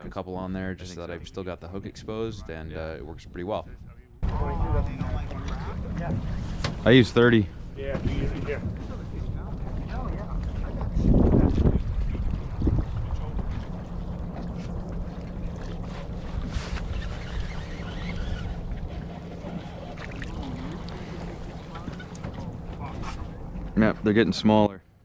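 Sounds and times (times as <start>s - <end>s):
steady low rumble: 0.0s - 24.8s
wind buffeting microphone: 1.9s - 24.1s
faint voices: 18.4s - 24.2s.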